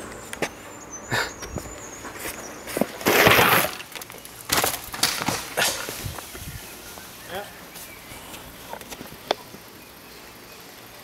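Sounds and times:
mountain bike knocking and clattering: 2.7s - 7.1s.

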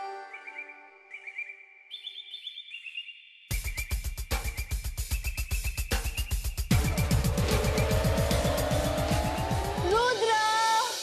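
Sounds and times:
fast drum roll: 3.5s - 11.0s
rising sweep: 6.7s - 10.1s.

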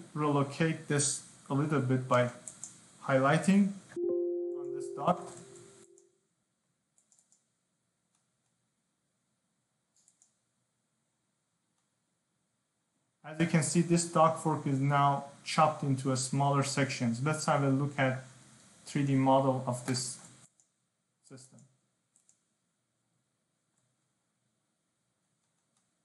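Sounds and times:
computer mouse clicks: 2.1s - 2.8s, 7.0s - 7.5s, 8.1s - 8.6s, 9.9s - 10.4s, 19.8s - 20.8s, 21.5s - 22.5s, 23.7s - 24.0s, 25.2s - 26.0s
faint voice: 4.6s - 5.4s, 13.3s - 18.1s.

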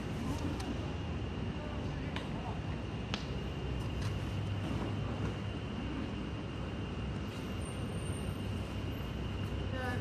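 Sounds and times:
low rumble of street noise: 0.0s - 10.0s.

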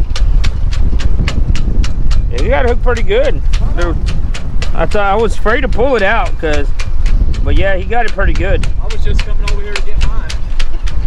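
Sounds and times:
regular ticking clicks: 0.0s - 11.0s
wind buffeting microphone: 0.0s - 11.0s.

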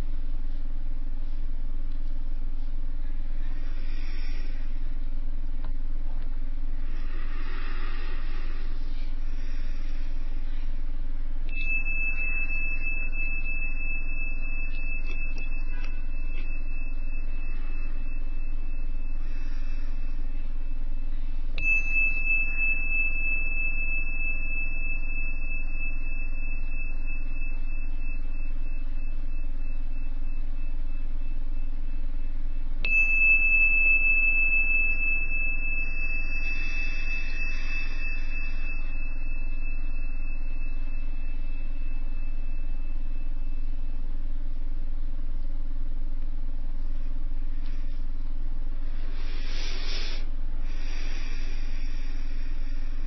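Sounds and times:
low room hum: 0.0s - 53.0s
small bell ringing: 11.5s - 44.2s.

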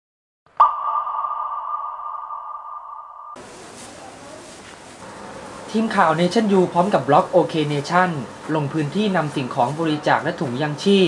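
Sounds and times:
electronic ping: 0.6s - 3.4s
outdoor background noise: 3.4s - 11.0s.

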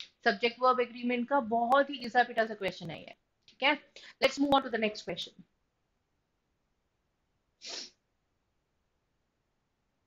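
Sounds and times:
woman sharp breath: 7.6s - 8.0s.

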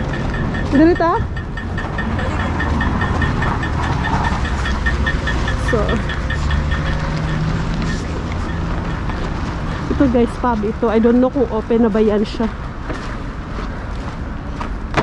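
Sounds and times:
light regular ticking: 0.0s - 10.0s
low rumble of traffic: 0.0s - 15.0s.

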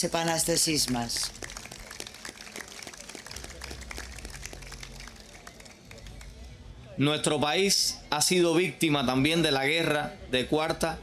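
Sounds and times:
scattered hand claps: 0.1s - 6.5s.

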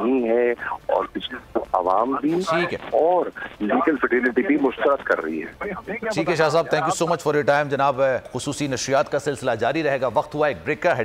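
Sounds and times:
man talking over telephone: 0.0s - 7.5s.

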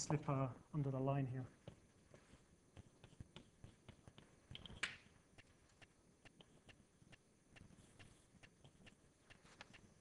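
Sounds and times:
chalk tapping on blackboard: 1.5s - 10.0s.

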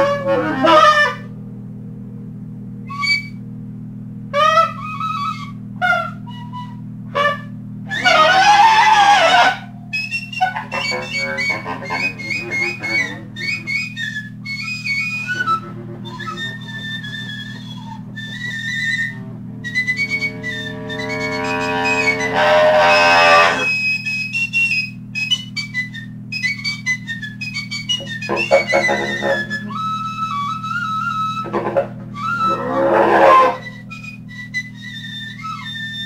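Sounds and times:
steady low hum: 0.0s - 36.0s
high wind instrument runs: 2.8s - 3.4s, 4.3s - 36.0s.

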